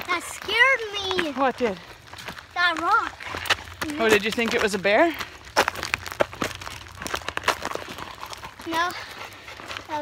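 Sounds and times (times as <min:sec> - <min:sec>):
footsteps on gravel: 0:00.0 - 0:10.0.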